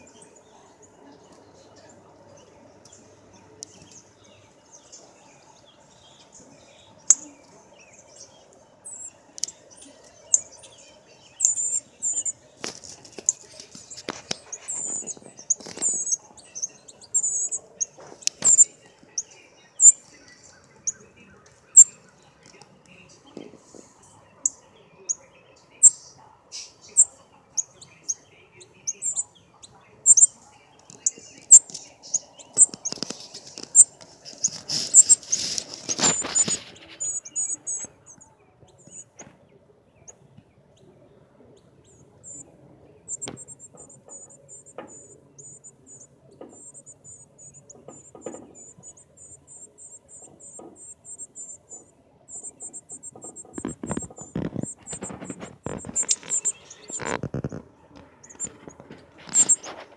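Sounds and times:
bird chip notes: 0:08.8 - 0:12.4, 0:30.0 - 0:38.2
rustling noise: 0:12.1 - 0:16.2, 0:30.9 - 0:37.9, 0:52.7 - 0:59.9.

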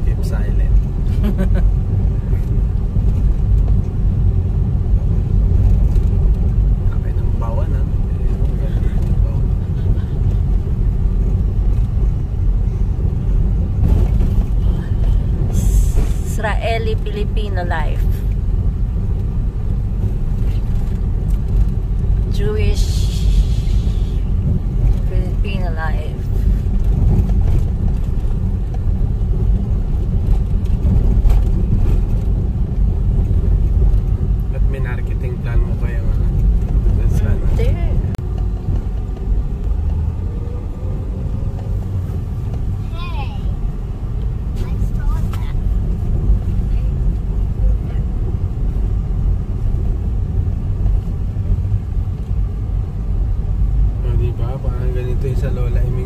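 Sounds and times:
car engine and tyre rumble: 0:00.0 - 0:56.0.

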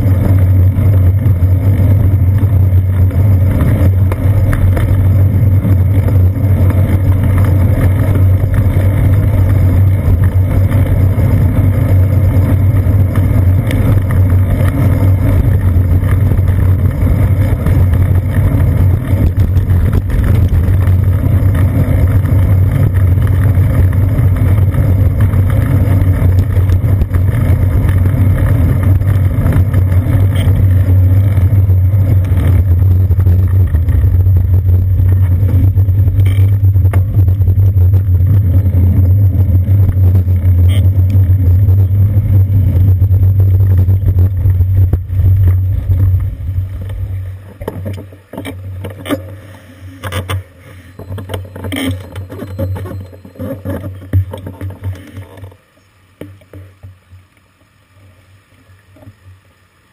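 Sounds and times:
road vibration rumble: 0:00.0 - 0:59.9.

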